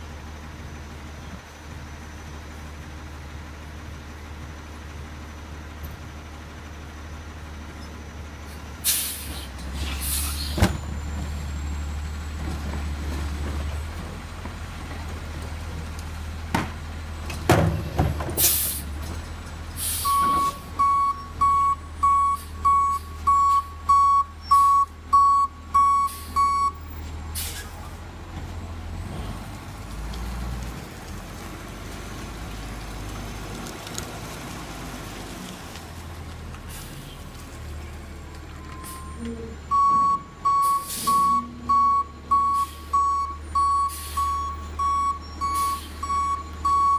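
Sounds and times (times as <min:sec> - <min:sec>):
diesel engine running: 0:00.0 - 0:46.9
air-brake hisses: 0:08.8 - 0:10.7, 0:18.4 - 0:18.9, 0:19.8 - 0:20.2, 0:27.4 - 0:27.8
backup alarm beeps: 0:20.0 - 0:26.8, 0:38.6 - 0:46.9.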